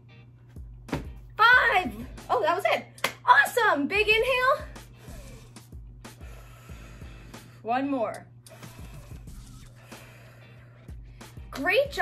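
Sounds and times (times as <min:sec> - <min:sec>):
woman speaking: 0:01.4 - 0:04.7, 0:07.6 - 0:08.3, 0:11.6 - 0:12.0.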